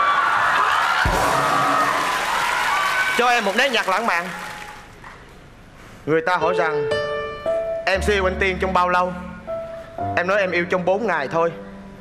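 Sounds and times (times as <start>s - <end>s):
audience laughing and cheering: 0.0s - 3.7s
audience clapping: 0.4s - 5.4s
music: 6.2s - 12.0s.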